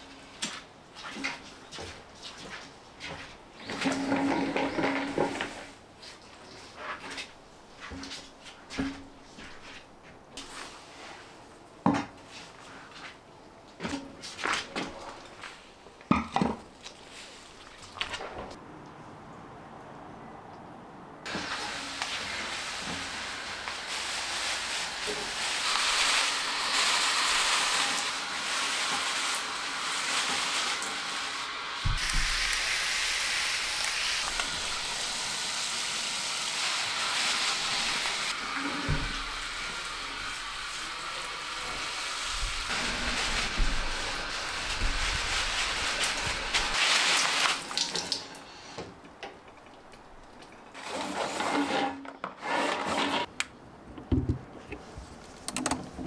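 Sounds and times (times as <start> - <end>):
hose spraying water on plants: 21.3 - 48.7.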